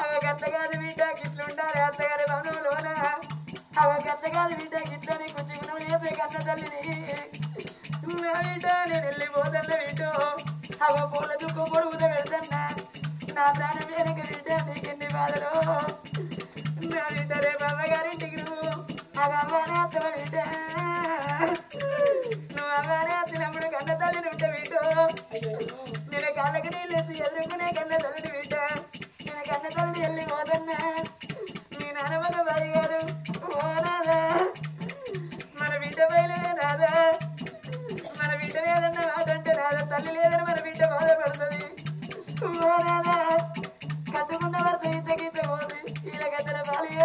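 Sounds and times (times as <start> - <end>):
person singing folk melody: 0.0 - 47.0
rattling: 0.0 - 47.0
steady percussion beats: 0.0 - 47.0.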